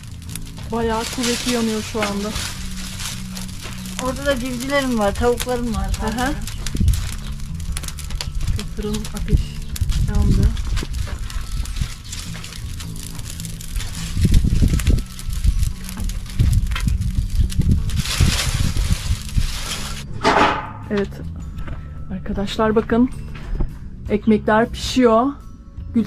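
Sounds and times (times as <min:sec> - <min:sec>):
wood fire crackling: 0:00.0 - 0:24.2.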